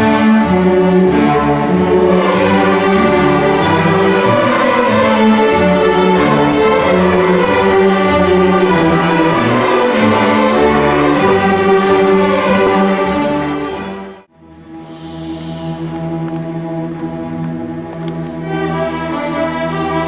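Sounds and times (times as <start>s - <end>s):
string orchestra playing: 0.0s - 20.0s.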